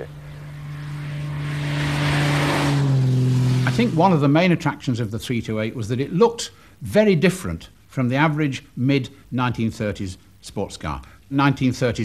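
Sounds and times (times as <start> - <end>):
wind and tyre noise: 0.0 - 4.2
car engine passing by: 0.0 - 4.4.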